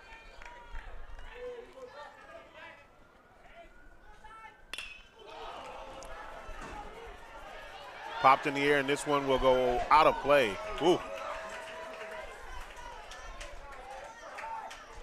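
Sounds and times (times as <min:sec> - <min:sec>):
faint crowd chatter: 0:00.0 - 0:15.0
murmur of crowd voices: 0:00.0 - 0:15.0
metal baseball bat striking ball: 0:04.7 - 0:05.2.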